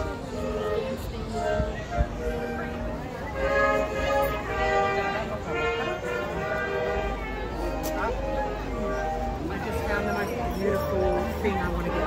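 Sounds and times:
live music of held notes: 0:00.0 - 0:12.0
people talking: 0:00.0 - 0:12.0.

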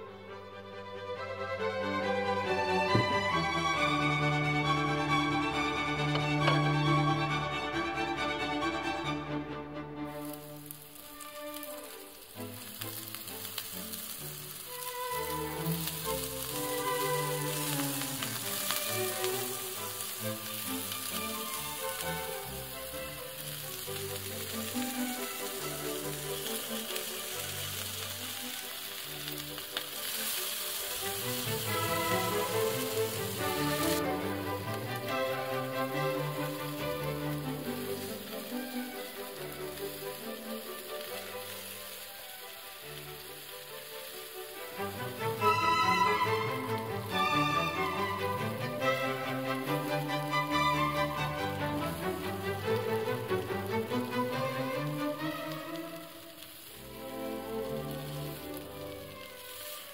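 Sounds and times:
background music: 0:00.0 - 0:59.6
sausages sizzling on grill pan: 0:02.5 - 0:07.2, 0:10.1 - 0:59.9.

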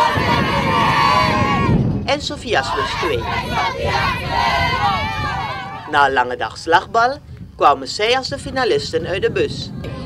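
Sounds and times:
children cheering and shouting: 0:00.0 - 0:01.8, 0:02.7 - 0:05.9.

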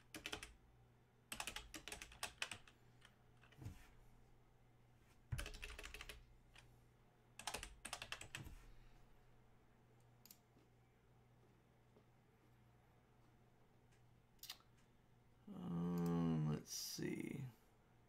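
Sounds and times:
faint keyboard typing: 0:00.0 - 0:00.6, 0:01.3 - 0:03.9, 0:05.3 - 0:06.7, 0:07.4 - 0:08.7, 0:10.0 - 0:10.7, 0:13.8 - 0:14.9.

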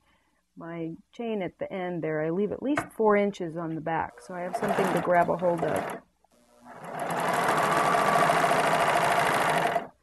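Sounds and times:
serger sewing machine stitching: 0:04.4 - 0:06.0, 0:06.7 - 0:10.0.

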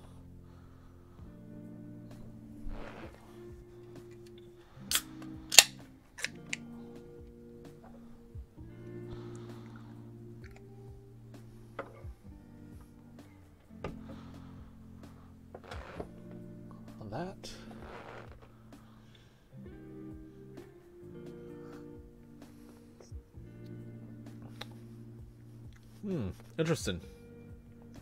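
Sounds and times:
soft background music: 0:00.0 - 0:28.0
beer can pull-tab snapping: 0:04.9 - 0:06.6.

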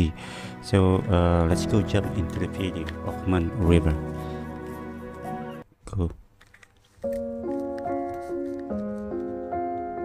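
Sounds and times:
slow piano notes: 0:07.1 - 0:10.0.

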